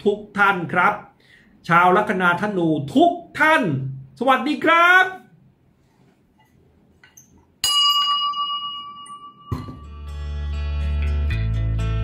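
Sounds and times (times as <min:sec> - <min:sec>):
small brass bell ringing: 0:07.6 - 0:10.2.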